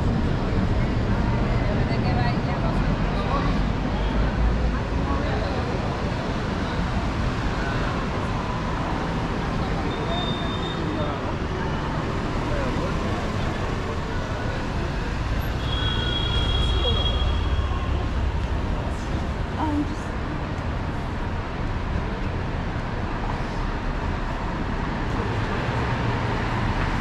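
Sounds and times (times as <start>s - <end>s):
cars passing on street: 0.0s - 27.0s
chatter of passers-by: 0.0s - 27.0s.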